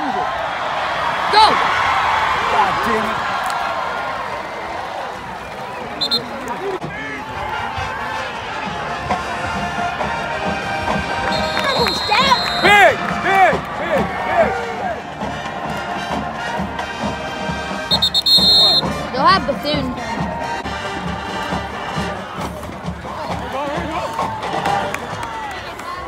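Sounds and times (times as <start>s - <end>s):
crowd cheering and shouting: 0.0s - 26.0s
referee's whistle: 5.9s - 6.4s, 11.2s - 12.9s, 17.9s - 18.9s
background music: 7.4s - 25.6s.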